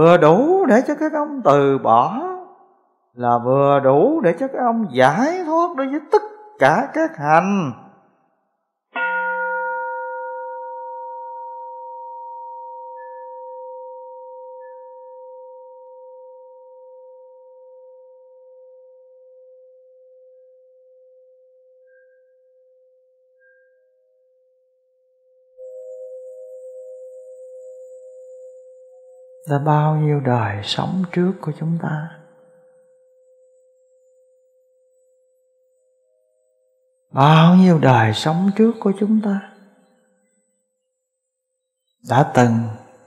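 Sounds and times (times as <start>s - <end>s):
bowl bell ringing: 9.0s - 18.5s, 25.6s - 40.9s
softer pulsing ring: 25.6s - 43.0s.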